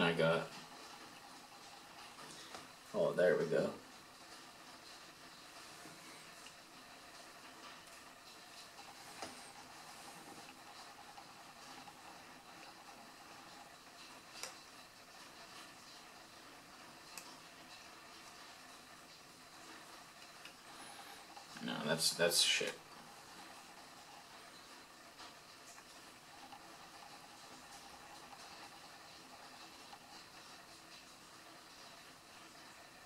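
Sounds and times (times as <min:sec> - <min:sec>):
faint room hiss: 0:00.0 - 0:33.0.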